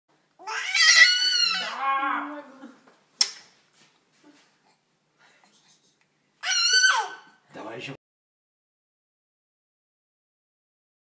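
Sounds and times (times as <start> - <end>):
baby crying whinily: 0.4 - 2.6, 6.4 - 7.4.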